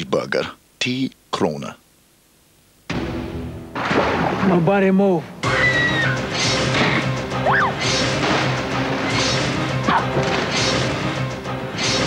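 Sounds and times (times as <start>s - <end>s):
loud crashing hits: 2.9s - 4.7s.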